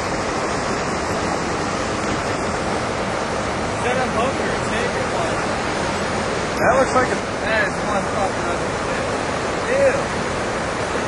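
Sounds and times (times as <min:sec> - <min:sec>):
stream water flowing: 0:00.0 - 0:11.0.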